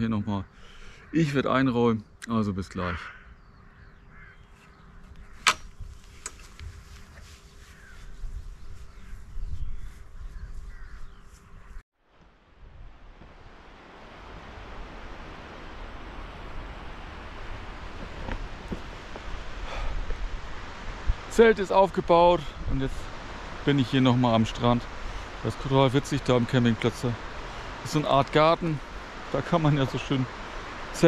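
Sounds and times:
birds calling: 0:00.0 - 0:11.8
wind: 0:00.0 - 0:31.0
sharp click: 0:05.4 - 0:06.4
surf on a beach: 0:12.2 - 0:31.0.

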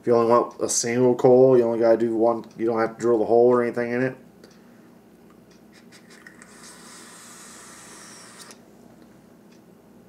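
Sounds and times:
vaporizer draw hiss: 0:05.8 - 0:08.6.

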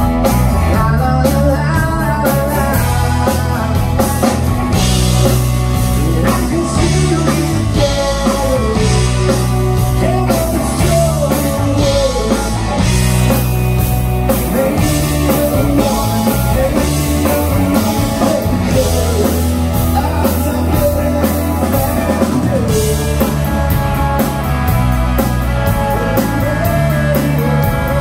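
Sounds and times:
live rock band playing: 0:00.0 - 0:28.0
male lead vocal: 0:00.4 - 0:13.5, 0:14.1 - 0:28.0.

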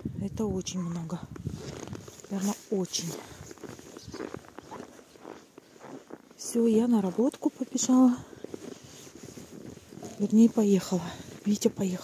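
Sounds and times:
footsteps crunching in snow: 0:00.9 - 0:12.0.

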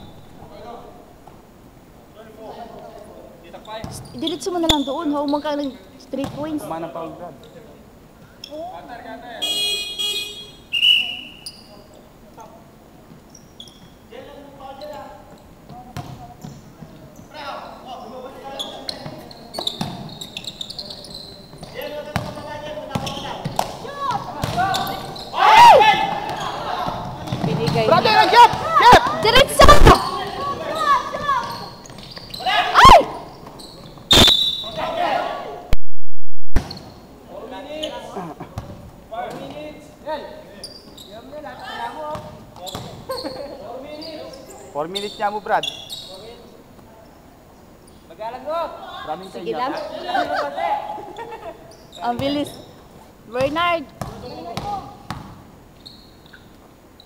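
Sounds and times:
players shouting: 0:23.8 - 0:31.8, 0:32.4 - 0:33.3, 0:34.6 - 0:35.6.

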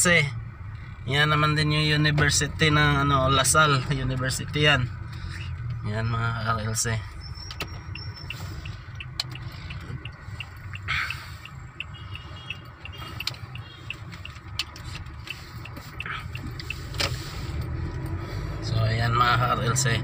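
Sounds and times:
engine and road rumble: 0:00.0 - 0:20.0.

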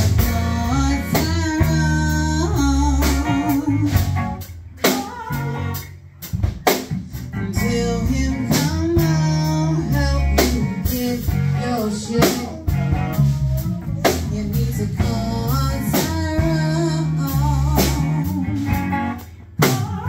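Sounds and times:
bass guitar: 0:00.0 - 0:20.0
drum kit: 0:00.0 - 0:20.0
electric guitar: 0:00.0 - 0:20.0
woman singing with vibrato: 0:04.8 - 0:05.8, 0:09.2 - 0:18.8, 0:19.6 - 0:20.0.

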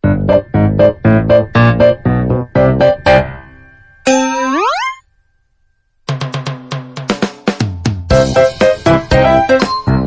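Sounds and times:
ringing tone sliding up: 0:04.0 - 0:05.0.

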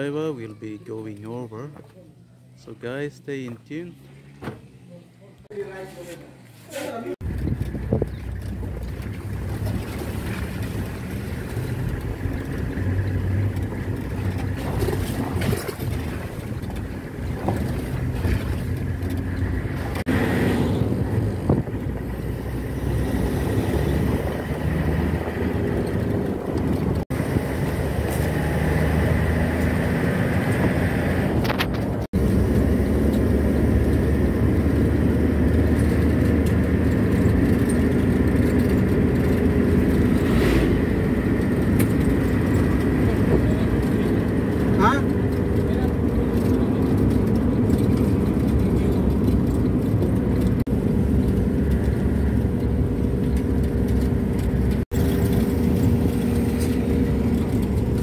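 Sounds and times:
ambulance engine and road noise: 0:00.0 - 0:58.0.

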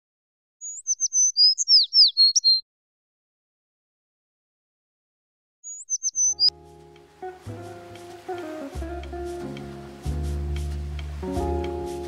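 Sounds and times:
high-pitched bird chirps: 0:00.6 - 0:02.6, 0:05.6 - 0:06.5
plucked guitar music: 0:06.4 - 0:12.0.

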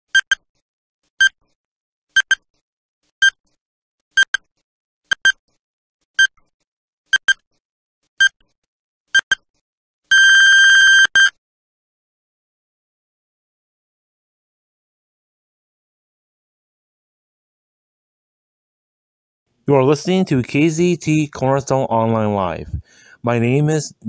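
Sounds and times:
short high electronic beeps: 0:00.1 - 0:00.4, 0:02.2 - 0:02.4, 0:09.2 - 0:09.4, 0:10.1 - 0:11.4
long electronic beep: 0:10.1 - 0:11.4.

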